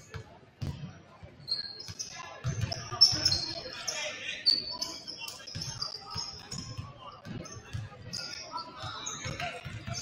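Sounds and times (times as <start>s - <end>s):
sneaker squeak: 1.4s - 10.0s.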